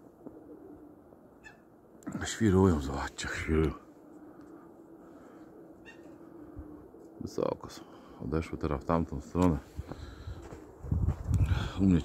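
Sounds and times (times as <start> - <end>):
pigeons cooing: 0.0 - 8.6.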